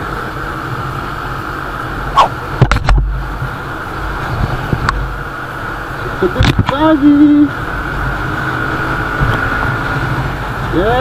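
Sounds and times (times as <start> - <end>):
scooter engine and road rumble: 0.0 - 11.0
wind rush over microphone: 2.1 - 6.8.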